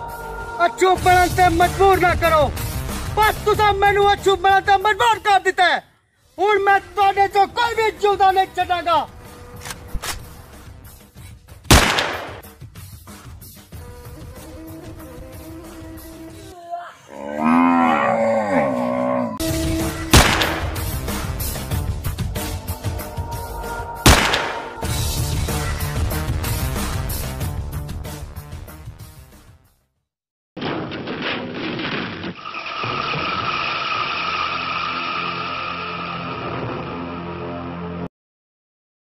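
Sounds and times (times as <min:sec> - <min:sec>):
music: 0:00.0 - 0:17.1, 0:19.4 - 0:30.1, 0:34.4 - 0:38.1
cow mooing: 0:17.1 - 0:19.4
high screeching tone: 0:32.4 - 0:37.2.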